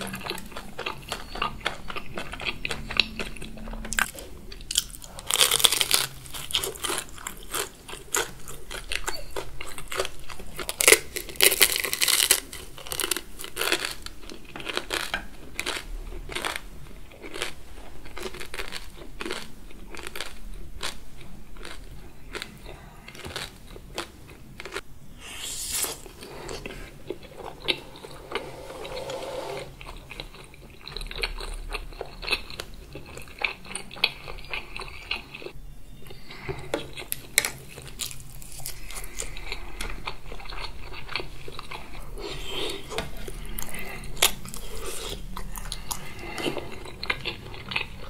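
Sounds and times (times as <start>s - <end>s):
crunching and chewing: 0.0s - 28.0s, 29.8s - 48.0s.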